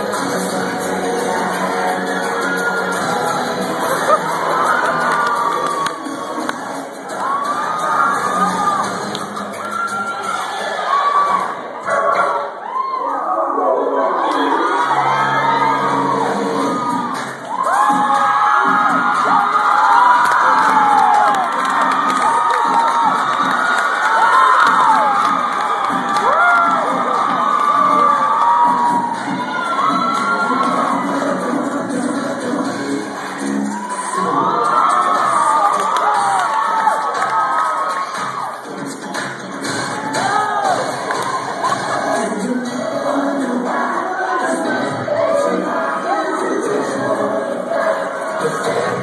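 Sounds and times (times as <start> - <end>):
audience screaming and cheering: 0.0 - 49.0.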